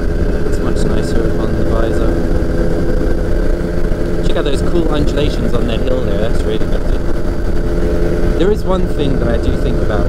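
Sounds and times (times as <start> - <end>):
microlight engine running: 0.0 - 10.0
rushing airflow: 0.0 - 10.0.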